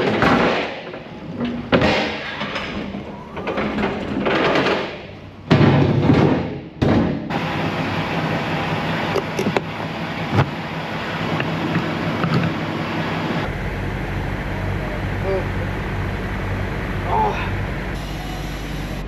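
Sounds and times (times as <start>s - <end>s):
pallet jack metal clatter: 0.0s - 7.3s
truck engine idling: 7.3s - 19.0s.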